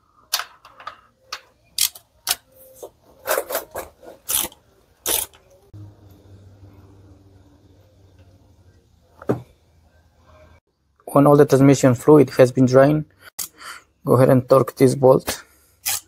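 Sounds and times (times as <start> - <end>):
faint low hum: 5.5 - 11.0.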